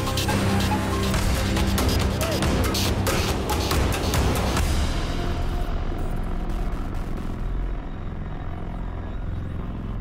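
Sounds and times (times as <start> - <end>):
low rumble: 4.5 - 10.0.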